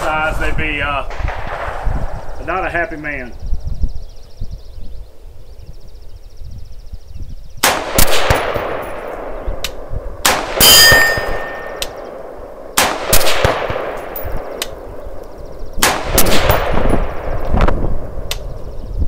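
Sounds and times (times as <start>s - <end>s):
rifle shots echoing: 1.1s - 3.3s, 7.6s - 15.2s, 15.8s - 18.2s
metallic ringing of steel targets: 10.6s - 12.1s.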